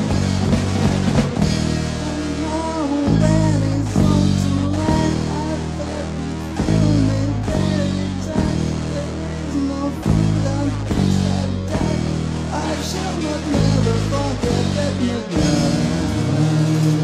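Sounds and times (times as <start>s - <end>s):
low sustained bass notes: 0.0s - 17.0s
rock guitar playing: 0.0s - 17.0s.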